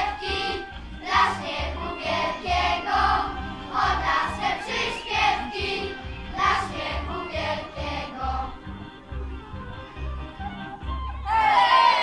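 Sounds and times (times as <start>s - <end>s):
children singing: 0.0s - 8.5s.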